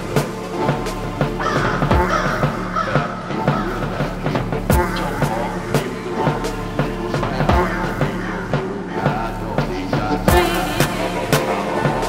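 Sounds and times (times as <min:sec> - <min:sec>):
drum and bass beat: 0:00.0 - 0:12.0
crow cawing: 0:01.3 - 0:05.9, 0:07.4 - 0:09.2.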